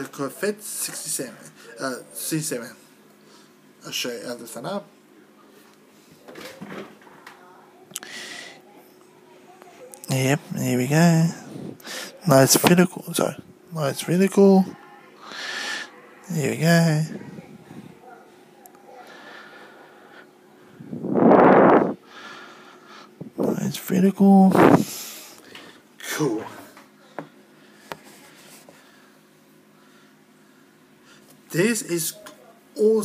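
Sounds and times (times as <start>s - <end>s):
air rushing on microphone: 20.8s - 22.0s, 24.5s - 25.0s.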